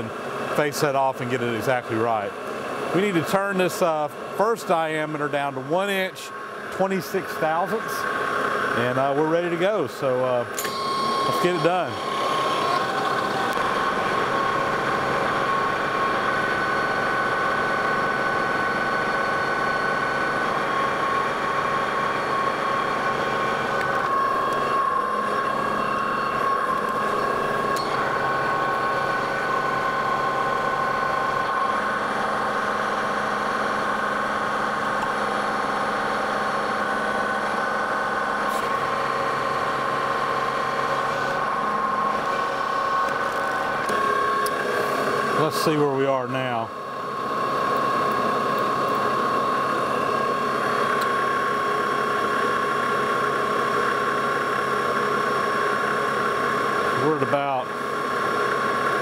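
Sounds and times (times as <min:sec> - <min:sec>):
metal lathe whining: 0:02.5 - 0:59.0.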